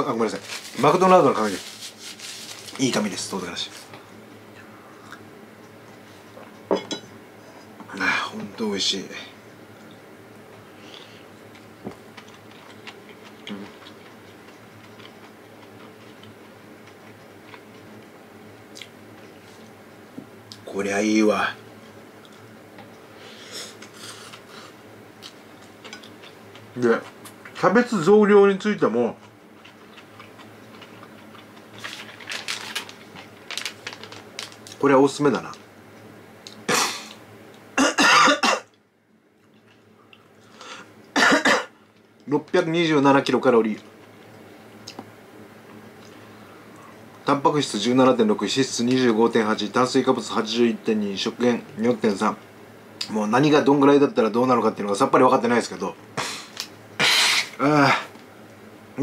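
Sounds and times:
man coughing and clearing throat: 36.7 - 37.1, 37.8 - 38.7, 41.2 - 41.8.

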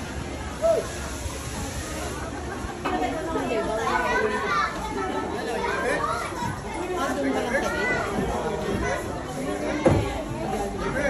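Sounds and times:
adults talking: 0.0 - 11.0
children chattering and calling: 0.0 - 11.0.

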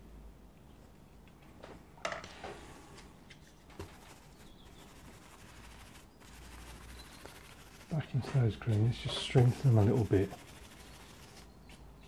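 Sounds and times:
faint clicks and taps of brush: 3.4 - 11.8.

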